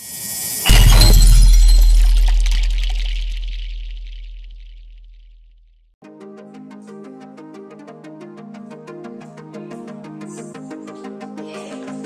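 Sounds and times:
deep rumble: 0:00.7 - 0:05.3.

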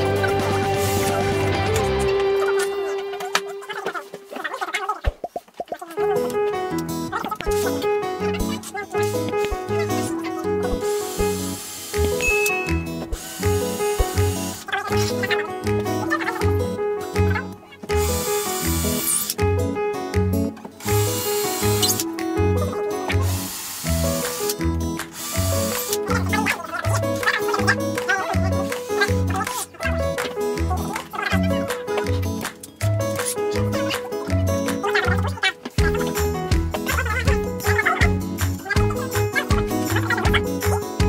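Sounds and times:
background music with bass beat: 0:24.0 - 0:41.0.

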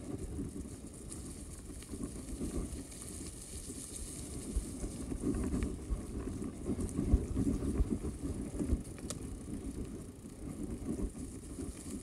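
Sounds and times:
bike tyres rumbling over dirt: 0:00.0 - 0:12.0.

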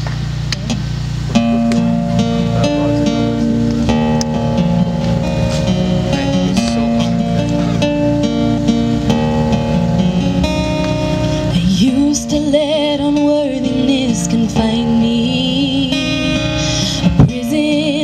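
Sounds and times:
acoustic guitar chords: 0:00.0 - 0:18.0.

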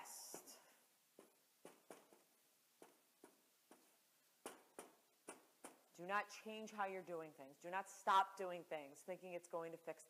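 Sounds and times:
marker tapping on whiteboard: 0:01.2 - 0:05.8.

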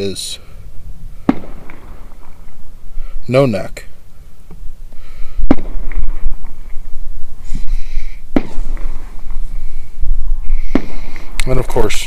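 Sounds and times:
sharp bangs: 0:01.2 - 0:02.6, 0:05.4 - 0:07.0, 0:08.2 - 0:09.7, 0:10.4 - 0:12.0.

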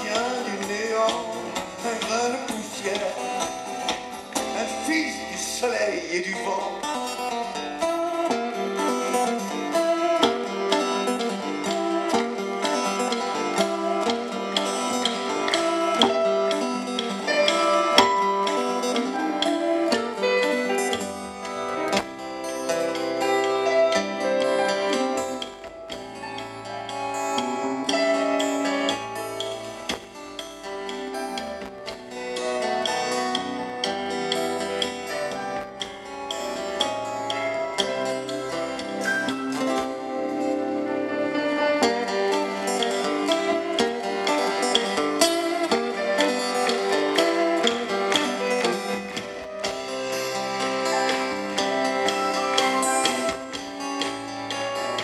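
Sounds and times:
electric guitar: 0:00.0 - 0:55.0
rock band playing: 0:00.0 - 0:55.0.

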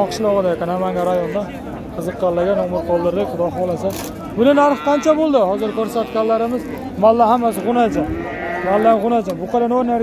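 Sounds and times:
men talking: 0:00.0 - 0:10.0
calf mooing: 0:04.4 - 0:09.2.

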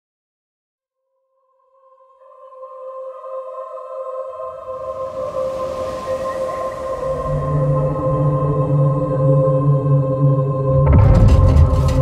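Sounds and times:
rushing hiss: 0:04.7 - 0:08.0
deep rumble: 0:10.7 - 0:12.0.

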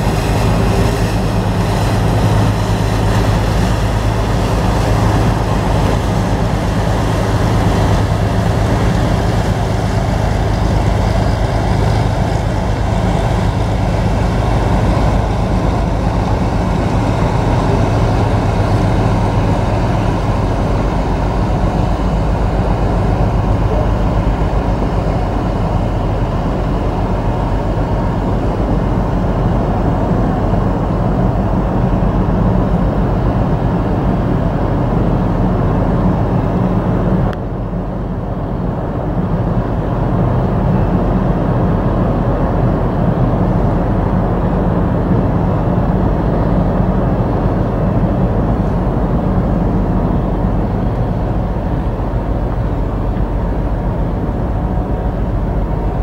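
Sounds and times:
broad rush of noise: 0:00.0 - 0:56.0
ship engines droning: 0:00.0 - 0:56.0.

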